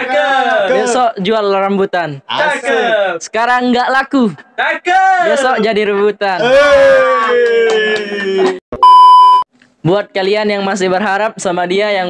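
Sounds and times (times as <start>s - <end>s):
electronic beep: 8.8s - 9.5s.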